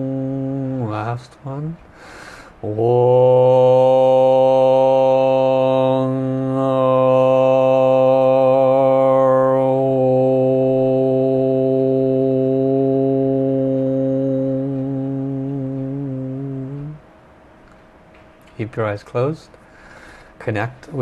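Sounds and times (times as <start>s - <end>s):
man chanting on a low note: 0.0s - 1.8s, 2.6s - 17.0s.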